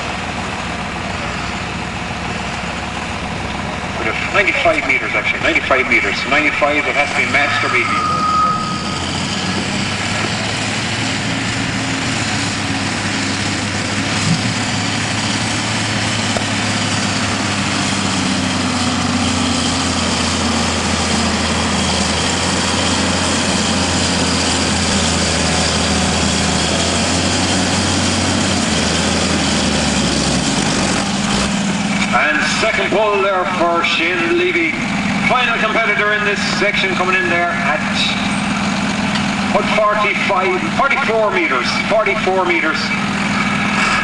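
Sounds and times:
tractor diesel engine under load: 0:00.0 - 0:44.0.

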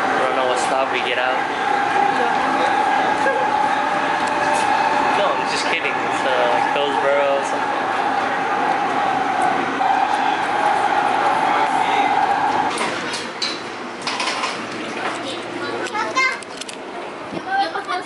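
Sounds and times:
light rail car whine and rumble: 0:00.0 - 0:18.0.

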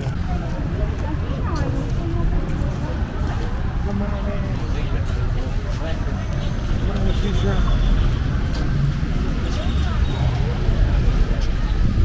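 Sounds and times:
passing car traffic: 0:00.0 - 0:12.0.

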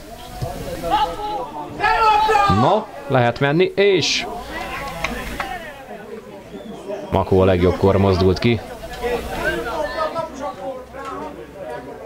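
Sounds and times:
distant voices calling: 0:00.0 - 0:11.5.

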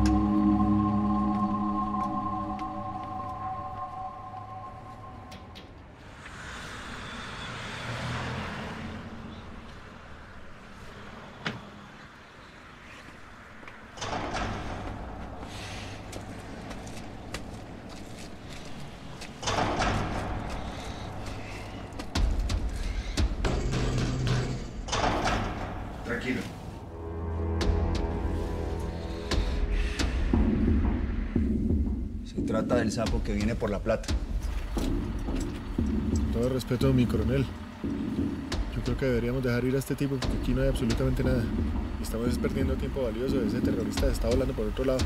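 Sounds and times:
traffic passing: 0:00.0 - 0:45.0
deep rumble: 0:19.4 - 0:45.0.

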